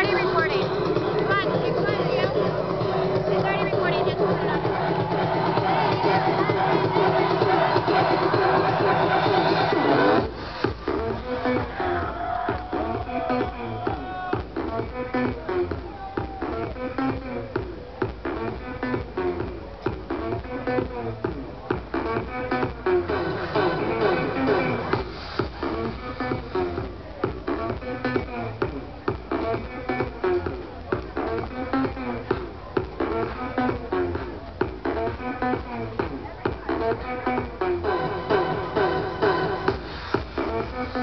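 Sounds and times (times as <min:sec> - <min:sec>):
loud amplified live music: 0:00.0 - 0:41.0.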